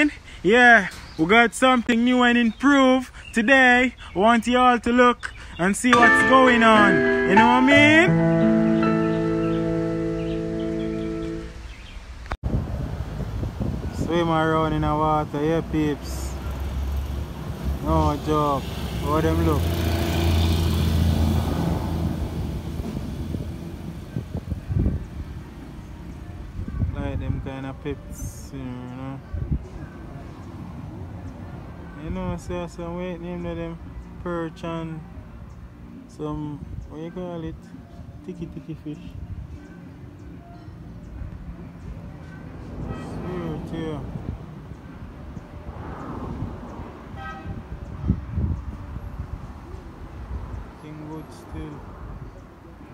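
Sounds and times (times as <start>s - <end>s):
vehicle engine humming: 6.0s - 12.4s, 16.5s - 24.4s.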